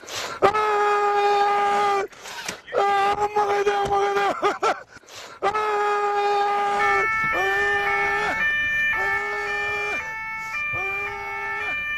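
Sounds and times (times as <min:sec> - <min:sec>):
siren wailing: 0:05.5 - 0:11.9
high steady siren tone: 0:05.6 - 0:11.9.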